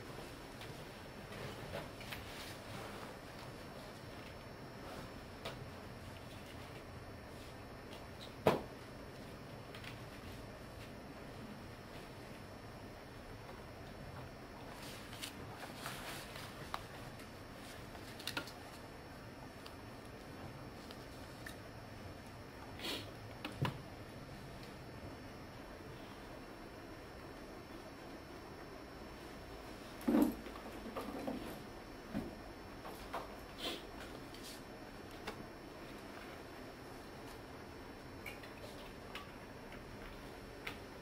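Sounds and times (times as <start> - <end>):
low room hiss: 0.0 - 41.0.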